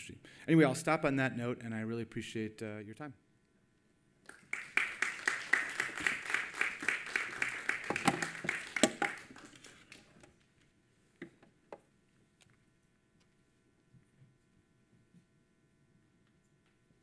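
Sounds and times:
audience applause: 0:04.3 - 0:10.1.

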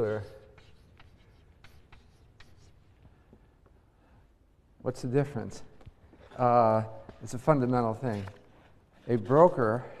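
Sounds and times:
chalk scratching on blackboard: 0:00.0 - 0:03.0.

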